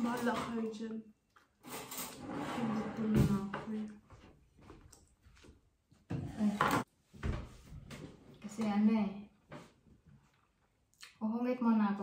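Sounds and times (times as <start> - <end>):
chair scraping across floor: 1.6 - 3.7.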